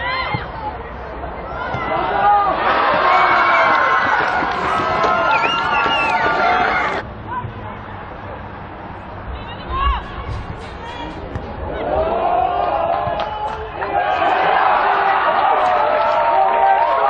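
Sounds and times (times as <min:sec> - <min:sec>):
players and spectators shouting: 0:00.0 - 0:08.1, 0:09.4 - 0:17.0.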